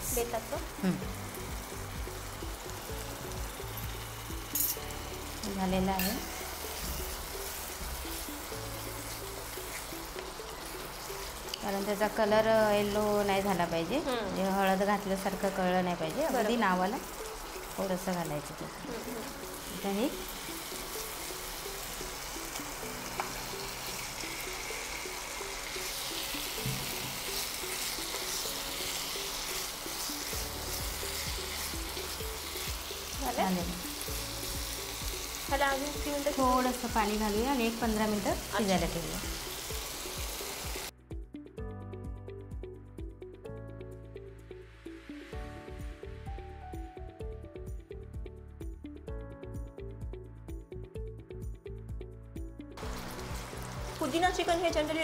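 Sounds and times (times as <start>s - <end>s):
masala sizzling in a pan: 0.0s - 40.9s, 52.8s - 55.0s
background music: 0.0s - 55.0s.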